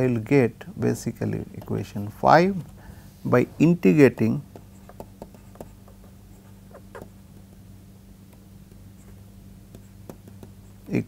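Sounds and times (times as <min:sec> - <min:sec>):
low electrical hum: 0:00.0 - 0:11.0
stylus tapping on tablet: 0:03.8 - 0:07.7, 0:08.3 - 0:11.0.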